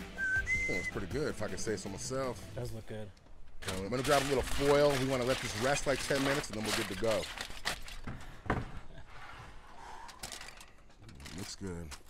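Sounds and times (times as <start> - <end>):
faint background noise: 0.1 - 12.0.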